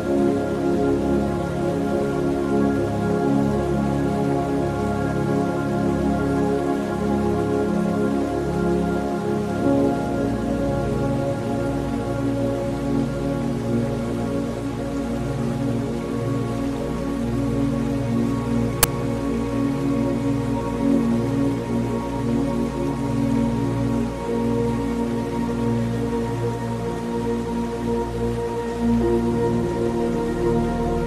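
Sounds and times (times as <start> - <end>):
calm new-age music: 0.0 - 31.0
rain-like hiss: 0.0 - 31.0.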